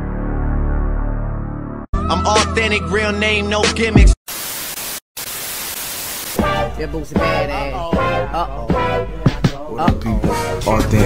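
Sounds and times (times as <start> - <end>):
music: 0.0 - 4.2, 6.4 - 11.0
television static hiss: 4.3 - 6.4.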